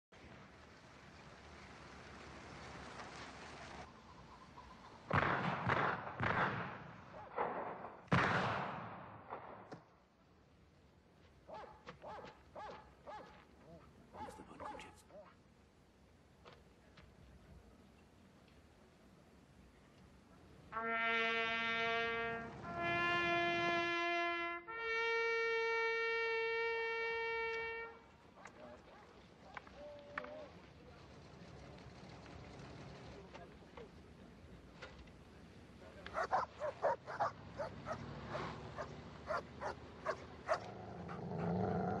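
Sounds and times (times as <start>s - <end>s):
dogs yelping: 36.2s - 42.0s.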